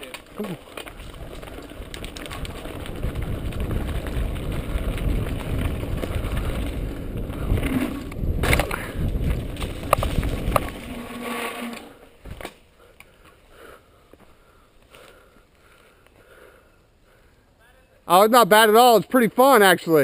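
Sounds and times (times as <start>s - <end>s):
tyres rumbling over dirt: 0.0s - 12.4s
bike rattling: 0.0s - 13.5s.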